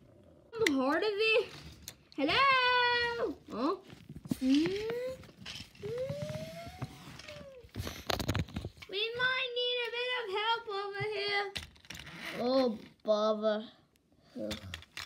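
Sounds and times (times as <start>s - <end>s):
child making vocal sound effects: 4.4s - 7.6s.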